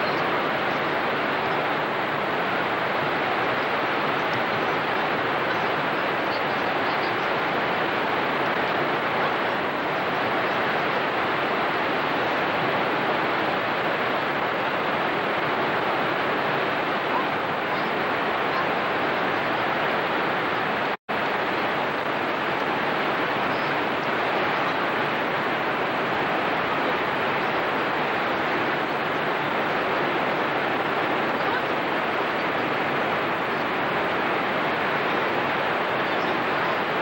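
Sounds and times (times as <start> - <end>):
waterfall rushing: 0.0 - 37.0.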